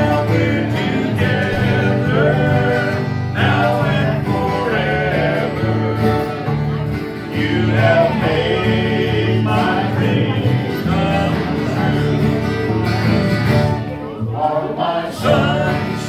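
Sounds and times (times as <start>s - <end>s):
bluegrass band playing: 0.0s - 16.0s
voices singing: 0.0s - 16.0s.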